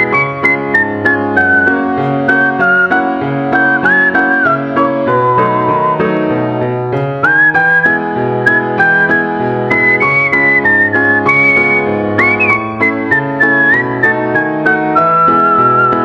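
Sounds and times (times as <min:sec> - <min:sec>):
whistled tune: 0:00.0 - 0:06.2, 0:07.2 - 0:16.0
keyboard accompaniment with bass: 0:00.0 - 0:16.0.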